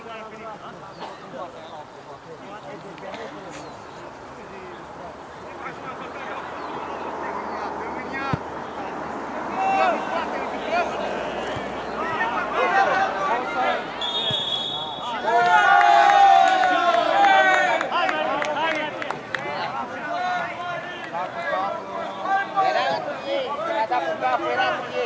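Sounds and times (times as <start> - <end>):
men shouting: 9.4 - 14.0
high whistle note: 14.0 - 15.2.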